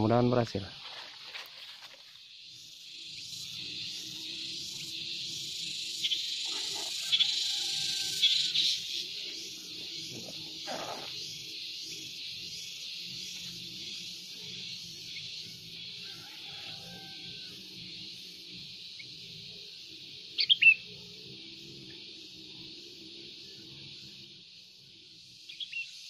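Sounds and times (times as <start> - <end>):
wild birds calling: 3.1 - 18.3.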